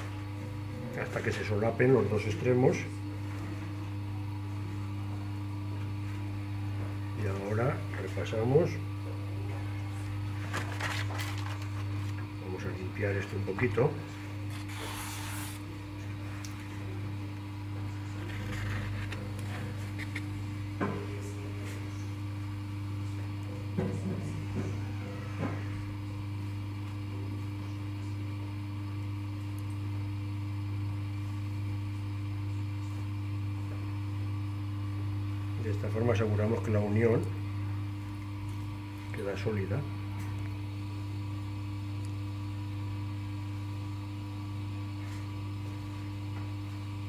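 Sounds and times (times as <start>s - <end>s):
potter's wheel motor humming: 0.0s - 47.0s.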